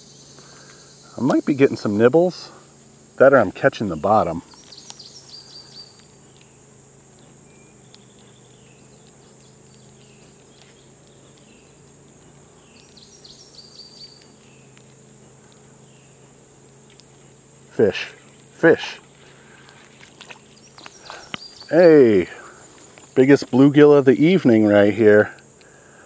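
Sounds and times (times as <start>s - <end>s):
crickets trilling: 0.0s - 26.0s
faint low hum: 0.0s - 26.0s
songbird chirping: 3.2s - 25.8s.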